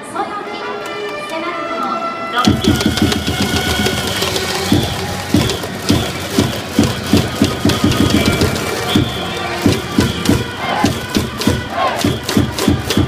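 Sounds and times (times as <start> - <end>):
trumpets playing a cheer: 1.3 - 13.0
drum beats: 2.4 - 13.0
crowd of fans chanting: 4.0 - 13.0.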